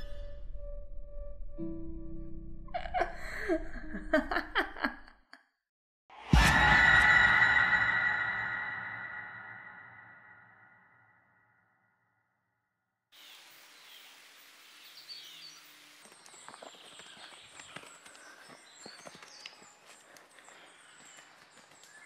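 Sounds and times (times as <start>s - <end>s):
musical sting: 6.2s - 10.4s
birds chirping: 13.2s - 22.0s
footsteps on dirt path: 16.0s - 22.0s.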